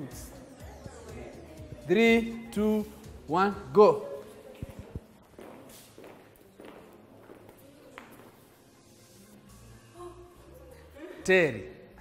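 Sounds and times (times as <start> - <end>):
high heels on tiled floor: 4.1 - 8.8.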